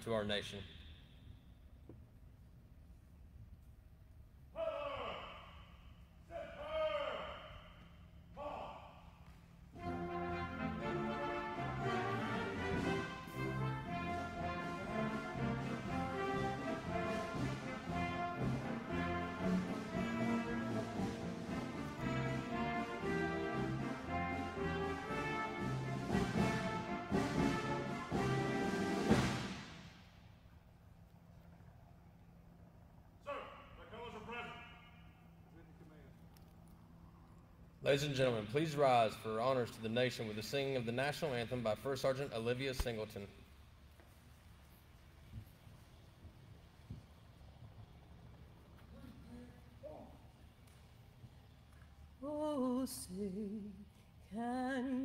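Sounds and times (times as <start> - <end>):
person shouting commands: 4.5 - 9.1, 33.2 - 35.0
ceremonial brass band playing: 9.7 - 30.1.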